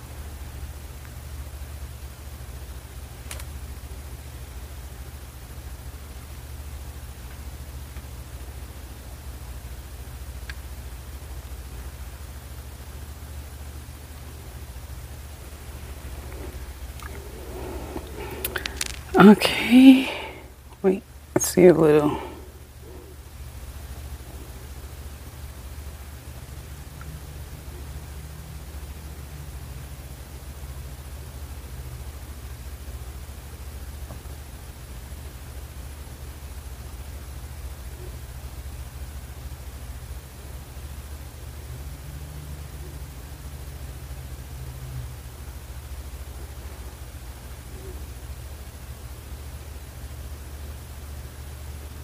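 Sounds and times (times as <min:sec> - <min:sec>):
background hiss: 0:00.0 - 0:52.0
low hum: 0:09.6 - 0:31.4.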